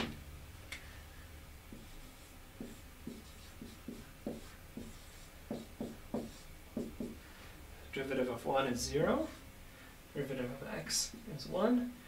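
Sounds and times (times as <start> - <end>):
marker writing on whiteboard: 1.7 - 7.2.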